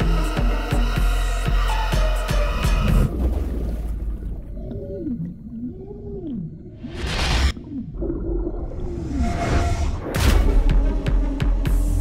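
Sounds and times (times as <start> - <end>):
low moaning gliding calls: 4.5 - 10.0.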